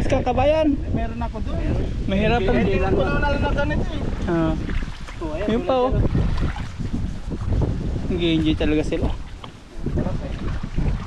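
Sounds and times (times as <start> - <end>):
people talking: 0.0 - 4.6, 5.2 - 6.1
wind rumble on microphone: 0.0 - 11.0
water splashing: 2.7 - 11.0.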